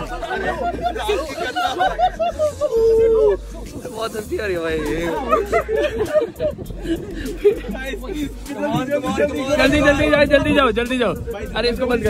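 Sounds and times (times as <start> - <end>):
people talking: 0.0 - 6.2, 7.3 - 12.0
people laughing: 0.0 - 10.4.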